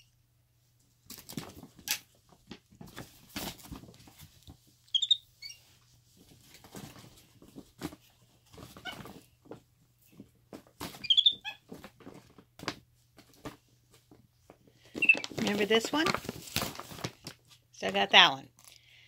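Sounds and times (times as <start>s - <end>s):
monkey squeaky chirps: 4.9s - 5.6s, 11.0s - 11.6s
plastic bag crinkling: 14.9s - 17.6s.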